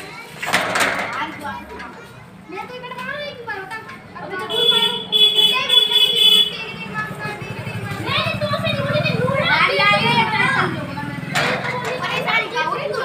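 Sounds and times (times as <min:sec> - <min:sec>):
boys talking and calling out: 0:00.0 - 0:13.0.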